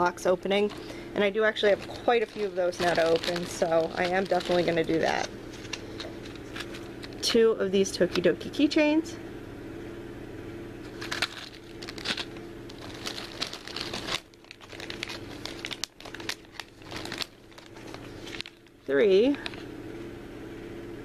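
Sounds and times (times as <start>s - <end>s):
steady low hum: 0.0s - 21.0s
plastic packaging crinkling: 0.5s - 7.3s, 10.9s - 19.7s.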